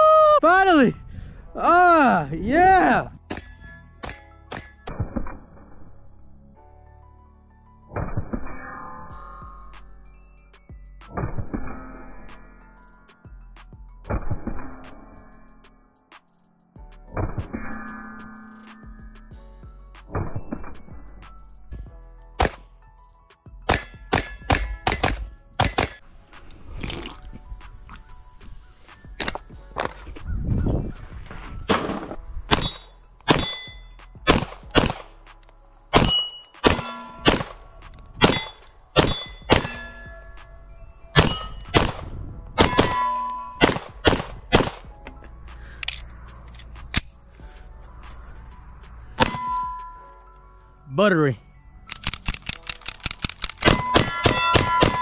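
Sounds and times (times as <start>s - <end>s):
steel plate clanging: 31.5s - 33.9s, 36.0s - 37.4s, 38.2s - 40.4s, 41.1s - 41.8s, 42.6s - 43.8s, 49.2s - 50.0s, 53.5s - 55.0s
pistol shots: 32.5s - 33.7s, 34.3s - 35.1s, 36.0s - 39.8s, 41.2s - 44.8s.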